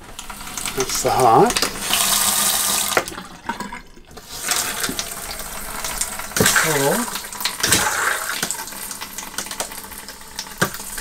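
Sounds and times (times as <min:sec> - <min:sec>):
faucet water into sink: 0:00.0 - 0:11.0.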